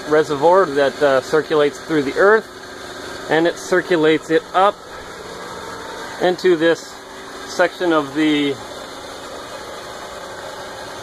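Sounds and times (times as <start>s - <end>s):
small motor humming: 0.0s - 11.0s.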